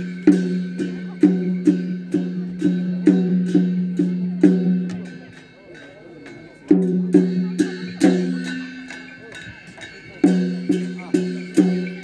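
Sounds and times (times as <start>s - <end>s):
ringing percussion strokes: 0.0s - 12.0s.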